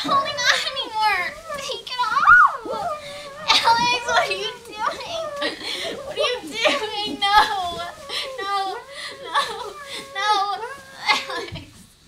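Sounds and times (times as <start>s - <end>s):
high-pitched voice sliding pitch: 1.5s - 11.2s.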